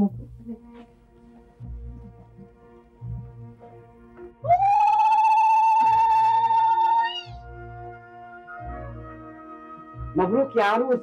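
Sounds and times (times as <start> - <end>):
woman ululating: 4.4 - 7.4.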